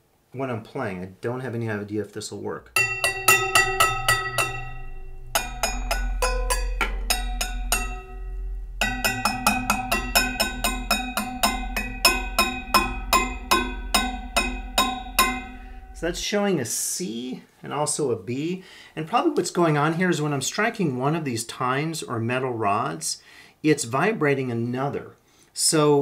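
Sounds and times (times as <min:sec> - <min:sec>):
metal tines ringing when struck: 0:02.8 - 0:16.2.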